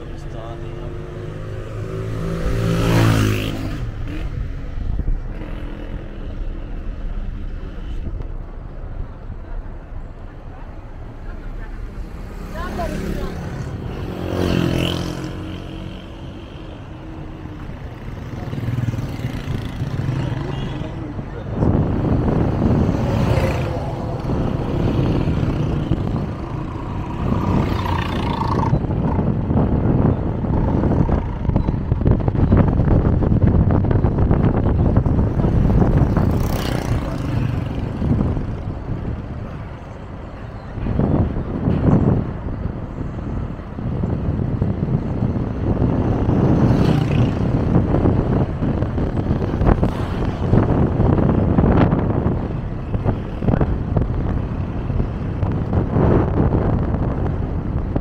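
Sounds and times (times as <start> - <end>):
passing traffic: 0.0 - 58.0
vehicle running noise: 0.0 - 58.0
wind rumbling on microphone: 0.0 - 58.0.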